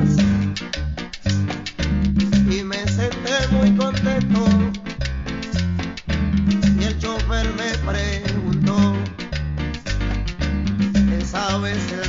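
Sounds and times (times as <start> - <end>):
salsa song playing: 0.0 - 12.0.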